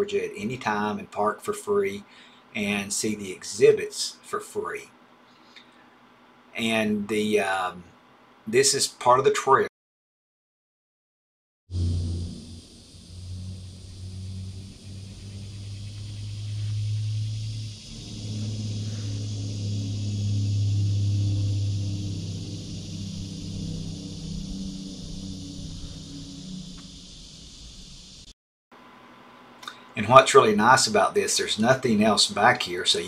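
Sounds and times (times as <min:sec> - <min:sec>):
low rumble: 0:11.7 - 0:28.3
insects buzzing: 0:11.8 - 0:28.3.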